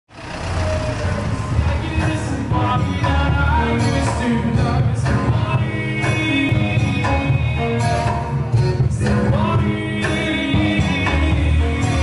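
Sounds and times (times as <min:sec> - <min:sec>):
road traffic rumble: 0:00.1 - 0:06.5
background voices: 0:00.2 - 0:12.0.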